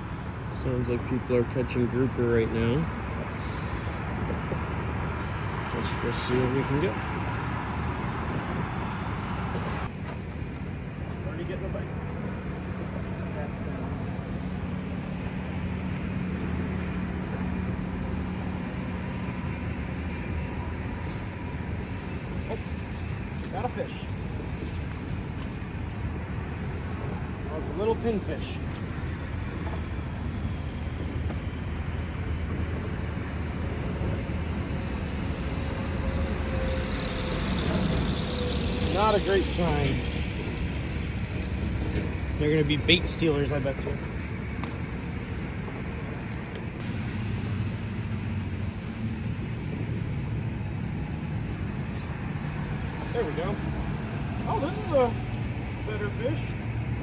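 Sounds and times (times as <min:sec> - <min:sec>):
heavy low engine drone: 0:00.0 - 0:57.0
low rumble of road traffic: 0:00.0 - 0:57.0.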